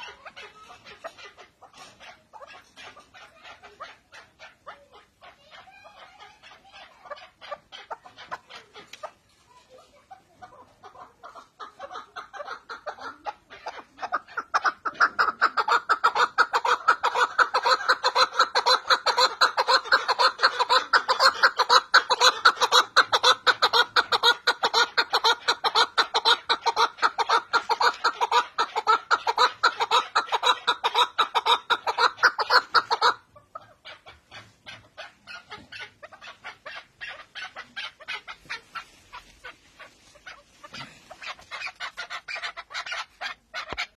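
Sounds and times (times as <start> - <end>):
partridge clucking: 0.0 - 9.4, 10.0 - 44.0.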